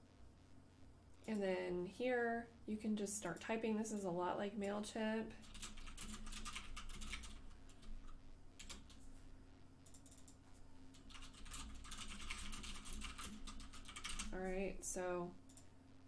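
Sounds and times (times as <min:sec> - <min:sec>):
computer keyboard typing: 0:05.4 - 0:09.0, 0:09.8 - 0:14.6.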